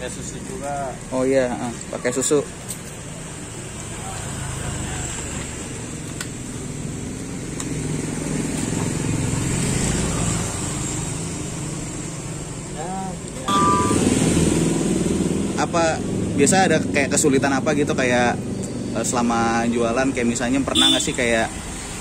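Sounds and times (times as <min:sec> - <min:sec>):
traffic engine rumble: 0:00.0 - 0:22.0
man speaking: 0:19.0 - 0:21.6.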